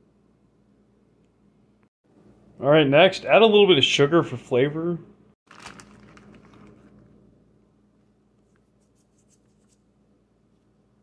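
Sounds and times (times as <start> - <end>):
plastic bag rustling: 5.5 - 7.2.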